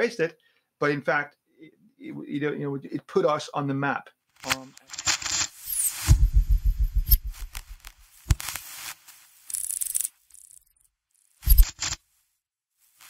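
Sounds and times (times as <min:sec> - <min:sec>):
crackling static bursts: 0:04.4 - 0:09.8, 0:11.3 - 0:12.0
low fast-pulsing electronic buzz: 0:06.1 - 0:07.9.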